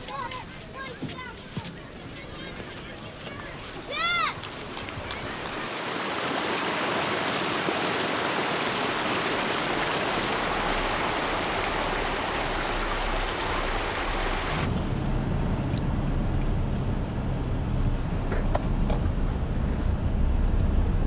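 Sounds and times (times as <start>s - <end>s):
river rushing over rocks: 4.4s - 14.7s
car low hum: 10.4s - 21.0s.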